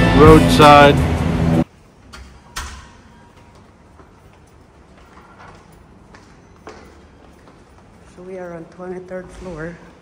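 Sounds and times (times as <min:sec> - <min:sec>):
music: 0:00.0 - 0:01.6.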